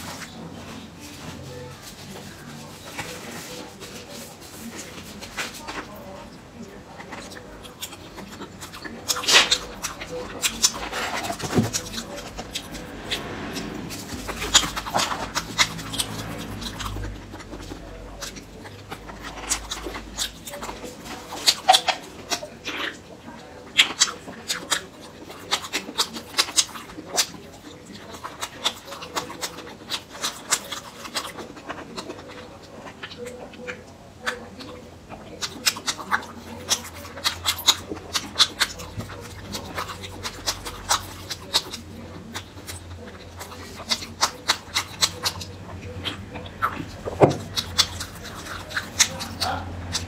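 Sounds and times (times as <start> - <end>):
person chewing food: 0.0 - 50.0
mouth smacks and clicks: 23.7 - 50.0.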